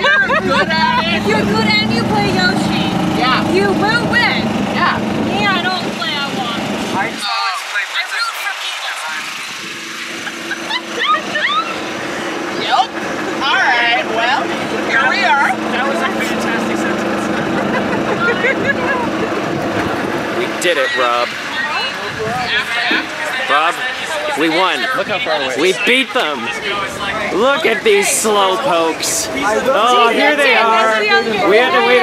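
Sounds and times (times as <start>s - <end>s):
golf cart motor hum: 0.0s - 7.2s, 8.9s - 32.0s
excited voices calling out: 0.0s - 32.0s.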